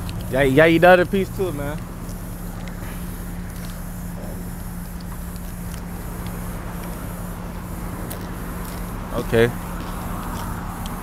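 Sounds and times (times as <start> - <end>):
low mechanical hum: 0.0 - 11.0
outdoor background noise: 0.0 - 11.0.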